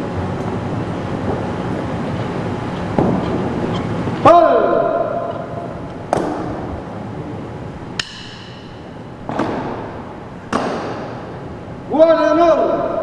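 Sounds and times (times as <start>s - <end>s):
sharp knocks echoing in a hall: 2.9s - 3.5s, 4.3s - 6.8s, 7.9s - 11.4s.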